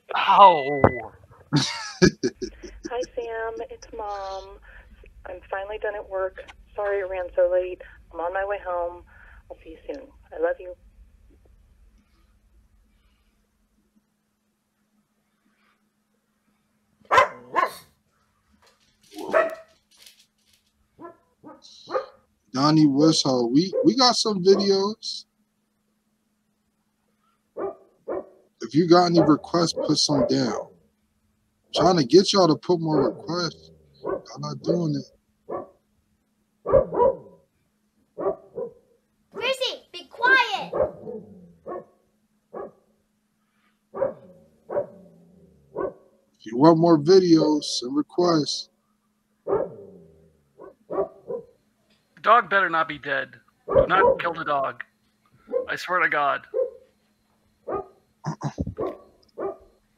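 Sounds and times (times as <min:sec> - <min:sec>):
faint low hum: 0:00.0 - 0:59.9
dog barking: 0:17.1 - 0:17.9, 0:19.2 - 0:19.8, 0:21.0 - 0:22.2, 0:23.5 - 0:24.8, 0:27.6 - 0:30.7, 0:32.8 - 0:34.9, 0:35.5 - 0:35.8, 0:36.6 - 0:37.4, 0:38.2 - 0:38.8, 0:40.6 - 0:41.9, 0:42.5 - 0:42.8, 0:44.0 - 0:45.0, 0:45.8 - 0:46.0, 0:49.5 - 0:49.8, 0:50.6 - 0:51.6, 0:53.7 - 0:54.3, 0:55.5 - 0:55.7, 0:56.5 - 0:56.9, 0:57.6 - 0:58.0, 0:58.8 - 0:59.7.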